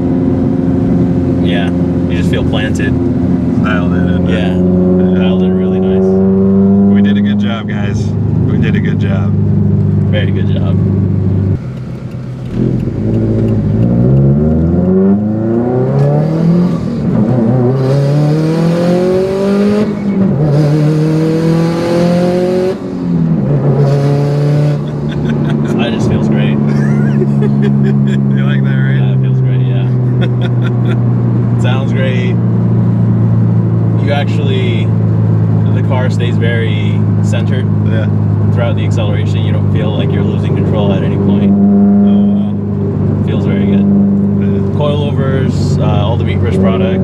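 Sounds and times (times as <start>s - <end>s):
car engine accelerating hard: 0.0s - 47.0s.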